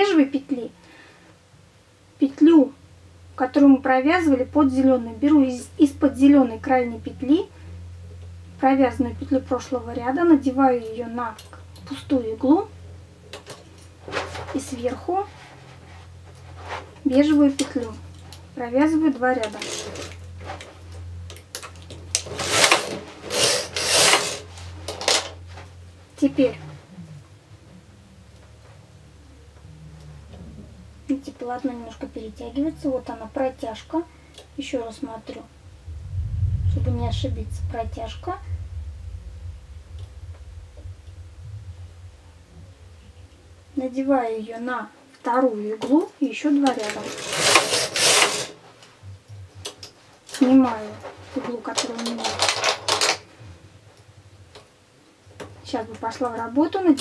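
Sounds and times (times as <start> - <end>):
knitting machine carriage sliding: 22.3 - 24.4, 47.0 - 48.6.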